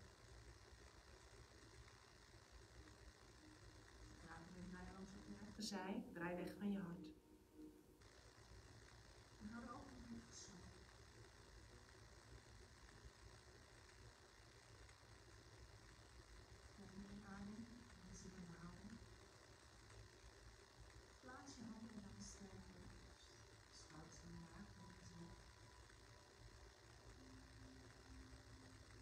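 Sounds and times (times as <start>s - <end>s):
woman speaking softly: 4.2s - 7.2s, 9.4s - 10.8s, 16.8s - 19.0s, 21.2s - 25.6s.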